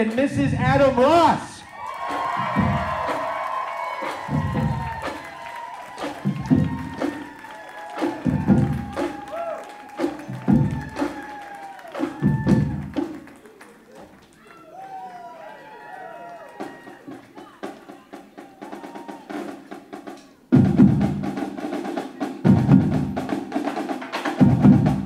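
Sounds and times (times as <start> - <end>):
quick light drum strokes: 2.0 - 13.3
marching bass drum booming: 2.1 - 5.4, 6.0 - 7.3, 8.0 - 9.3, 10.0 - 11.2, 12.0 - 13.2, 20.6 - 21.4, 22.5 - 23.4, 24.4 - 25.0.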